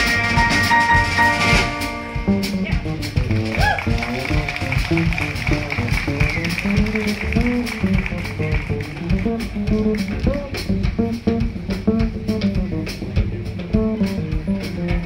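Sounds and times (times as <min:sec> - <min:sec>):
upright bass plucked: 0:00.0 - 0:15.0.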